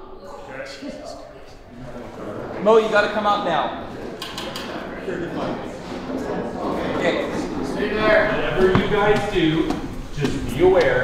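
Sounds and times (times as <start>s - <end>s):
men's voices echoing: 1.7s - 4.2s, 6.3s - 11.0s.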